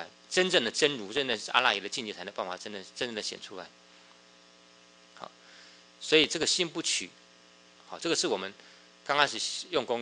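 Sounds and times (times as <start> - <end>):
faint mains hum: 0.0 - 10.0.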